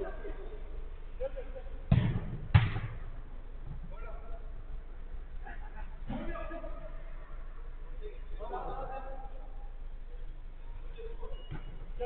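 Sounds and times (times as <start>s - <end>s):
football being kicked thuds: 1.9s - 3.0s.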